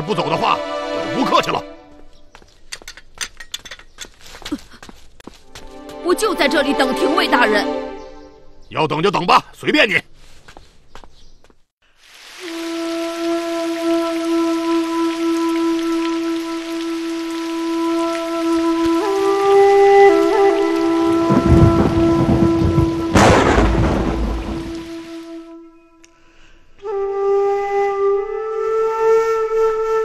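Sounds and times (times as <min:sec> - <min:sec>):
heavy rain: 0:11.9 - 0:25.4
thunder rumbling: 0:20.2 - 0:25.2
loud thunderclap: 0:21.0 - 0:25.0.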